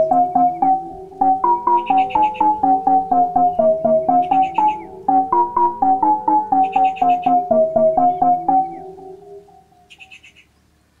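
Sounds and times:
soft keyboard tune: 0.0 - 10.0
bird chirping: 0.0 - 10.6.

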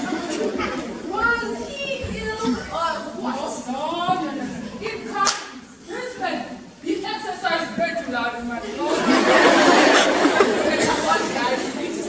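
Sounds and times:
voices talking in echoing hall: 0.0 - 12.0.

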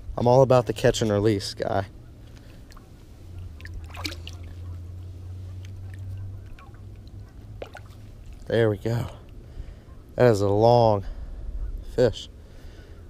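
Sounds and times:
steady low rumble: 0.0 - 13.0
fish splashing in water: 2.6 - 8.5.

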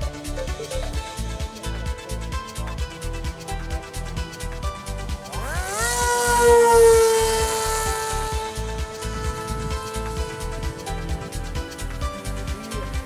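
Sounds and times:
background music with steady beat: 0.0 - 13.0
electric motor and propeller whine: 0.0 - 13.0.

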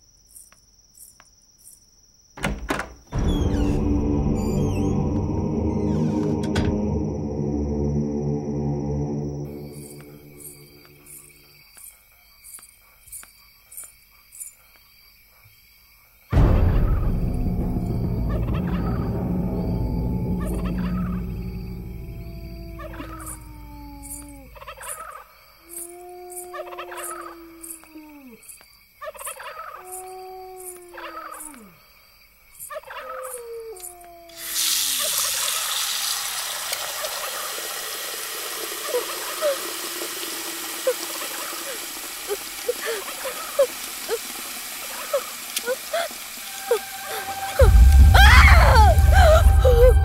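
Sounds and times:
eerie animal-like calls: 3.2 - 11.6, 16.4 - 31.9, 38.5 - 50.0
loud low hit: 16.4 - 24.6.

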